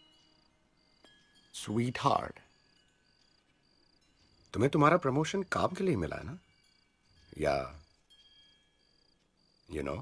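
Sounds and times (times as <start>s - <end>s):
cricket chirping: 0.0s - 10.0s.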